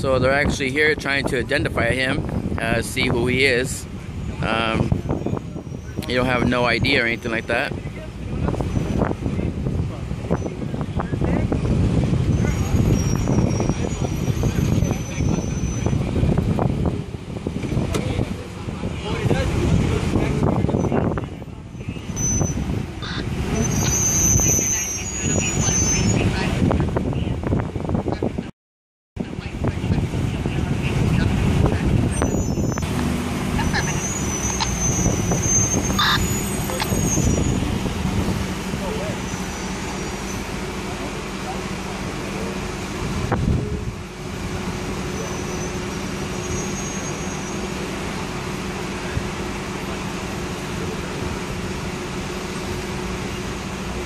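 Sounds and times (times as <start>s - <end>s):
street low rumble: 0.0s - 28.5s, 29.2s - 54.0s
indistinct voices: 17.7s - 28.5s, 29.2s - 54.0s.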